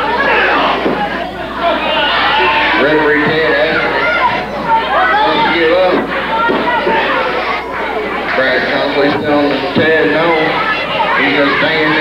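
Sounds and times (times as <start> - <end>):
spectators talking and shouting: 0.0 - 12.0.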